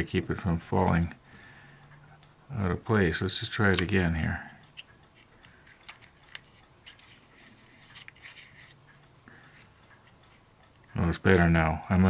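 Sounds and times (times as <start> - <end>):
plastic parts clicking and tapping: 4.7 - 8.8.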